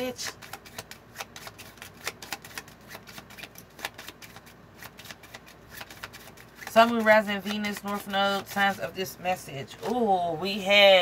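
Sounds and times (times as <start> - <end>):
cards shuffled by hand: 0.1 - 8.8.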